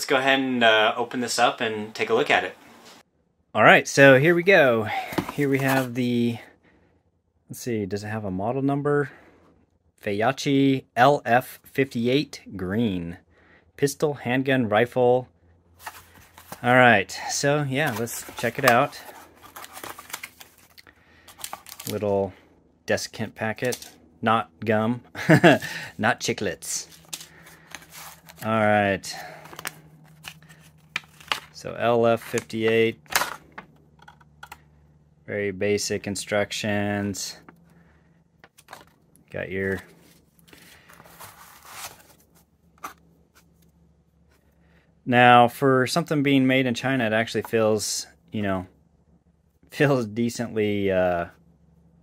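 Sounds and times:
paper and cardboard rustling: 0:04.9 - 0:06.0, 0:15.8 - 0:16.7, 0:17.7 - 0:22.1, 0:26.8 - 0:33.2, 0:38.4 - 0:39.0, 0:39.6 - 0:43.6
packaging crinkling and clicking: 0:18.3 - 0:22.0, 0:29.4 - 0:31.6.

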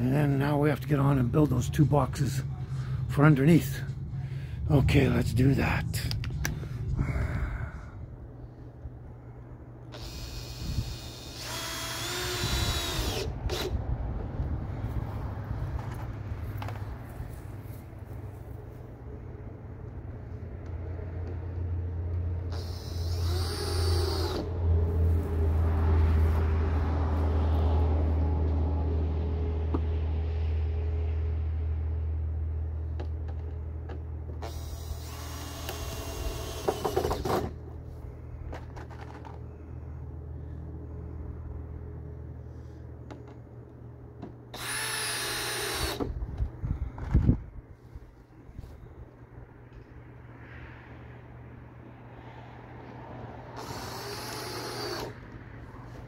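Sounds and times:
low steady drone: 0:00.0 - 0:10.6
cordless drill driving screws: 0:09.9 - 0:13.8, 0:22.5 - 0:24.5, 0:34.4 - 0:37.6, 0:44.5 - 0:46.2, 0:53.6 - 0:55.2.

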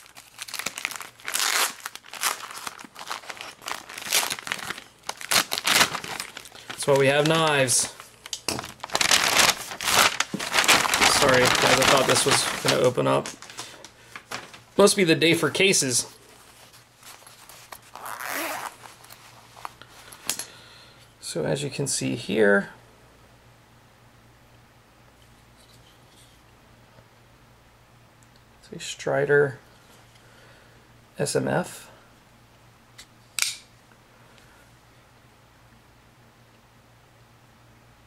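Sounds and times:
zipper pulled open: 0:17.9 - 0:18.8.

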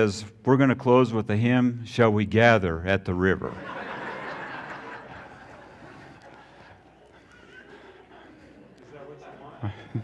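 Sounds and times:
crowd laughing: 0:03.4 - 0:10.0.

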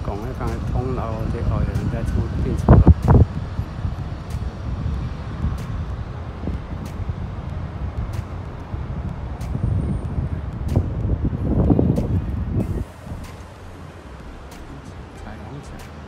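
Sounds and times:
low rumble of traffic: 0:00.0 - 0:16.0
wind buffeting microphone: 0:00.0 - 0:16.0.

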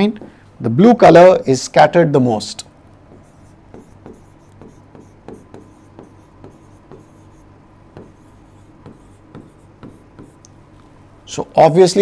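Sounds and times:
faint steady hum: 0:00.0 - 0:12.0
pen tapping and scraping on board: 0:03.1 - 0:10.4.

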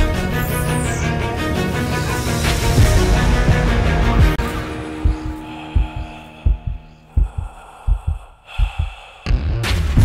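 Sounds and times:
heartbeat thumps: 0:04.9 - 0:09.7.

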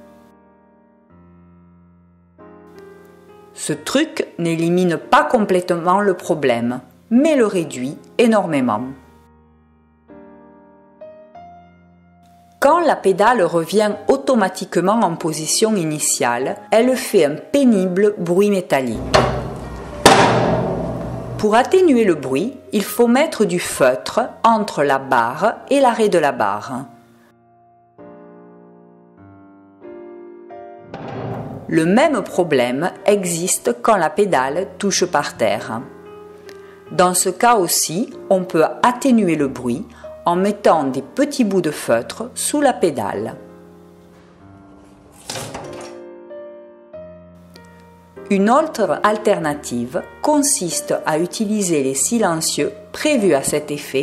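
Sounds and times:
soft background music: 0:00.0 - 0:54.0
loud ringing metallic clang: 0:18.9 - 0:22.0, 0:31.0 - 0:32.0
pedal knock: 0:19.0 - 0:21.9, 0:30.9 - 0:31.9.

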